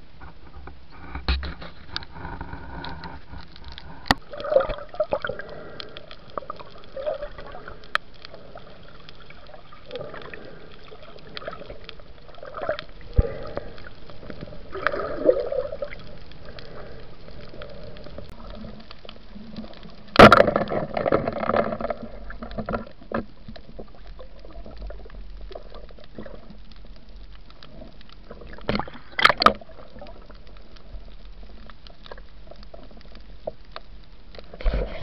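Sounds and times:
bubbling and rustling: 0:00.0 - 0:35.0
water gurgling and sloshing: 0:00.0 - 0:35.0.

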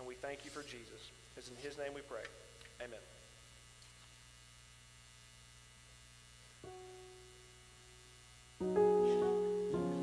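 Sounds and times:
electrical mains hum: 0:00.0 - 0:10.0
electronic keyboard held note: 0:08.6 - 0:10.0.

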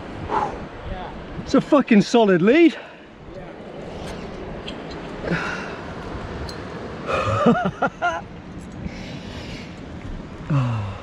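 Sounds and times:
heavy breathing: 0:00.2 - 0:00.7.

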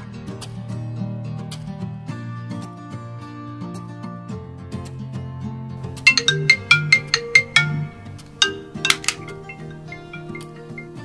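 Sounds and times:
soft background music: 0:00.0 - 0:11.0
phone ringtone marimba notes: 0:05.8 - 0:11.0.

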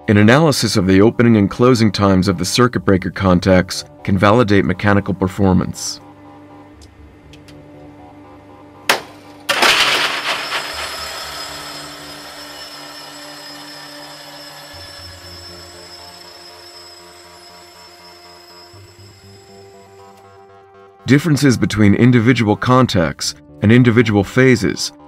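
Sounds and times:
background music: 0:00.0 - 0:25.0
loud mechanical clack ringing: 0:09.5 - 0:20.2.

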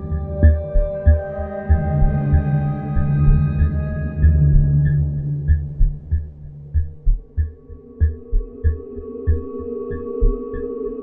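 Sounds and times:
low heartbeat-like pulse: 0:00.0 - 0:11.0.

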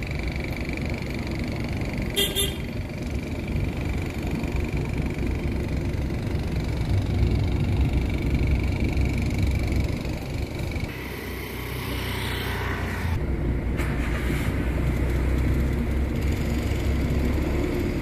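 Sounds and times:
vehicle engine and road noise: 0:00.0 - 0:18.0.

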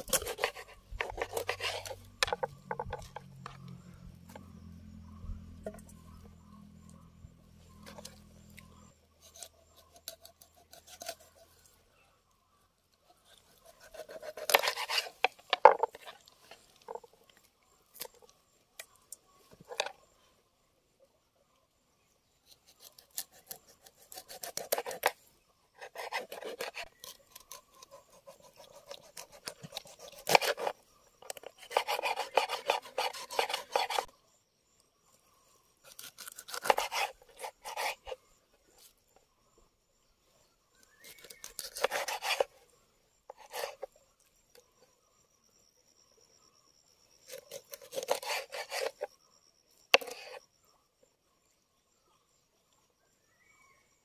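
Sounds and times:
knife scraping fish scales: 0:00.0 - 0:03.1, 0:08.8 - 0:11.6, 0:13.3 - 0:16.3, 0:22.5 - 0:25.2, 0:25.8 - 0:34.1, 0:35.8 - 0:38.2, 0:41.0 - 0:42.6, 0:43.3 - 0:43.9, 0:47.3 - 0:49.1, 0:50.0 - 0:50.4.

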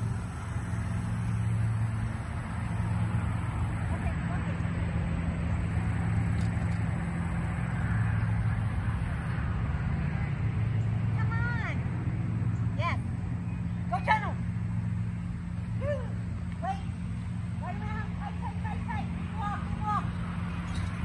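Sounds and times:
steady low hum: 0:00.0 - 0:21.0
woman calling: 0:15.8 - 0:17.0, 0:17.6 - 0:20.2.

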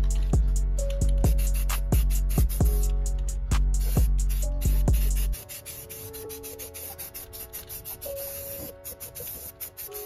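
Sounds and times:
bass-heavy music: 0:00.0 - 0:05.4
spray paint can strokes: 0:00.0 - 0:10.0.

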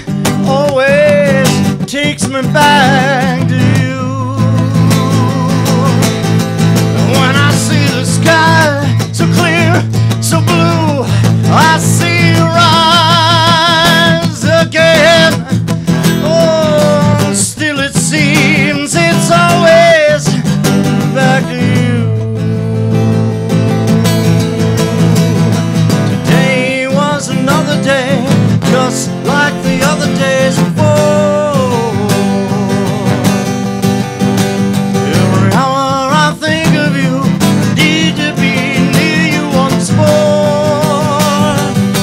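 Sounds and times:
acoustic guitar strumming: 0:00.0 - 0:42.0
man singing: 0:00.0 - 0:42.0.

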